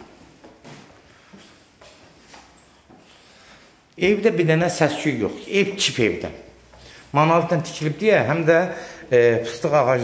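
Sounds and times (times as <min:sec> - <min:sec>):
footsteps on wooden stairs: 0:00.0 - 0:03.2.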